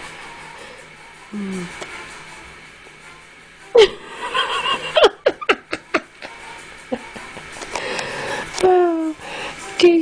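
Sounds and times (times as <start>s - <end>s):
person laughing: 3.8s - 7.5s.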